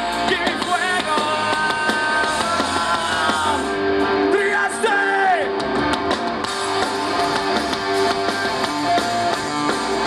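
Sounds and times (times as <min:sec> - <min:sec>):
drums: 0:00.0 - 0:10.0
electric guitars: 0:00.0 - 0:10.0.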